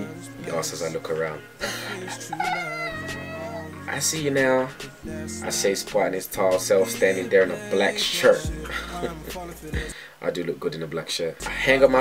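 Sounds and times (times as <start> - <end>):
background music: 0.0 - 10.1, 11.4 - 12.0
man laughing: 1.6 - 3.7, 8.6 - 9.3.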